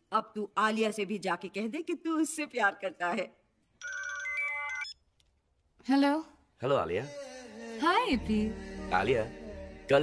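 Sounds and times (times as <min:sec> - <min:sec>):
phone ringtone melody: 0:03.8 - 0:05.0.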